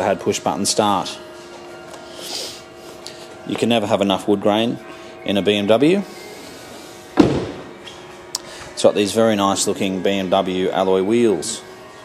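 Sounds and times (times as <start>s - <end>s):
car door slamming shut: 7.2s - 7.6s.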